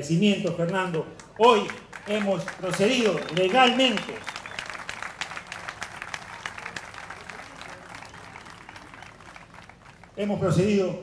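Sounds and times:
audience applause: 0:01.3 - 0:10.2.

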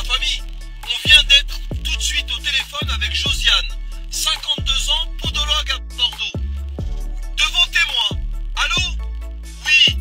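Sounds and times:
deep bass pitch drops: 0:00.0 - 0:10.0
hip hop music with rapping: 0:00.0 - 0:10.0.

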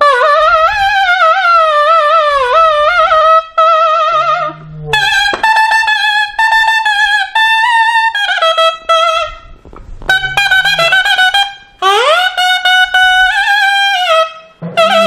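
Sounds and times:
double-reed horn melody: 0:00.0 - 0:09.5, 0:10.1 - 0:15.0.

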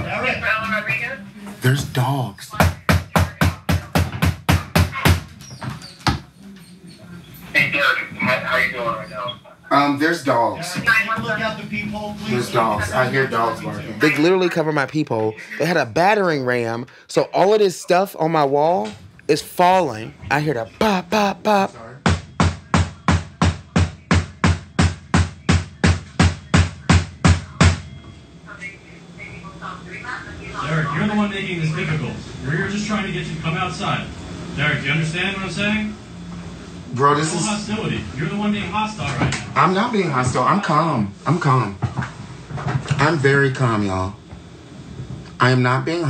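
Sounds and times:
door being pounded: 0:02.6 - 0:05.3.

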